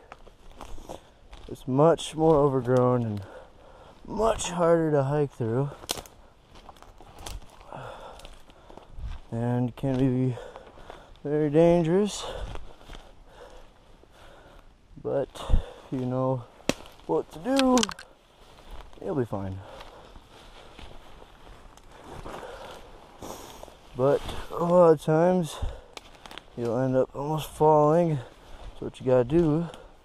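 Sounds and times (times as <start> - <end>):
ferns rustling: 0.0 - 30.0
footsteps through undergrowth: 0.0 - 30.0
breath: 3.2 - 4.0, 7.6 - 9.0, 10.4 - 11.2, 12.2 - 14.7, 15.4 - 15.9, 19.6 - 20.9, 21.9 - 24.5, 25.5 - 26.4
twigs snapping: 5.7 - 8.6, 16.6 - 19.0, 25.9 - 26.8.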